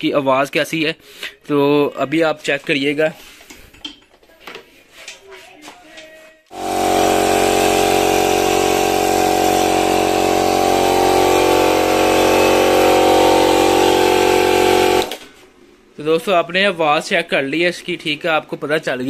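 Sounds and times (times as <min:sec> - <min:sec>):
electric air compressor running: 0:06.5 - 0:15.2.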